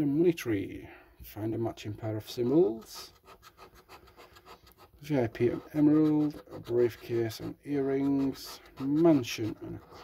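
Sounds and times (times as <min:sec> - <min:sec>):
scratch card scraping: 0:02.5 - 0:10.0.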